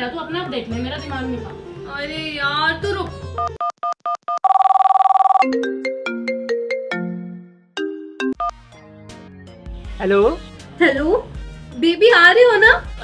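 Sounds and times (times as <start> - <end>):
electronic ringtone melody: 3.4 - 8.6
rapid trilling phone ring: 4.3 - 5.5.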